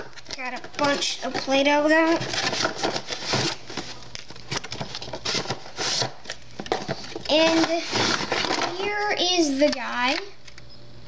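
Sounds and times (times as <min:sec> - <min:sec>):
cardboard box rustling: 0:00.6 - 0:08.7.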